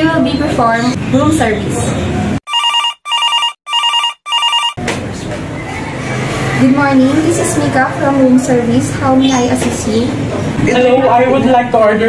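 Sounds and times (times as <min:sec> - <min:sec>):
telephone ringing: 0:02.5 - 0:04.8.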